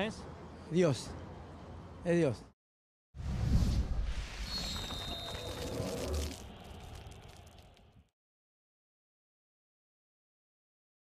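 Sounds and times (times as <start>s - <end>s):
swishing noise: 3.2s - 4.8s
high whistle-like tone: 4.0s - 7.6s.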